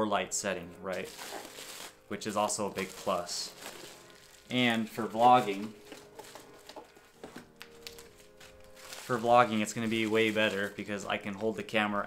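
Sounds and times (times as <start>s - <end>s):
bubble wrap crinkling: 0.9s - 11.8s.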